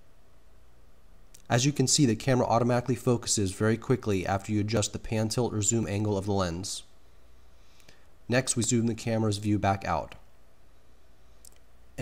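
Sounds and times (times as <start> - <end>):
low hum and hiss: 0.0 - 12.0
faint click: 11.4 - 11.7.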